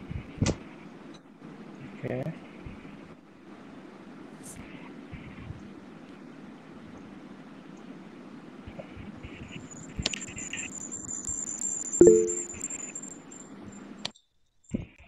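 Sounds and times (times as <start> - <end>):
faint high whine: 12.0 - 12.7.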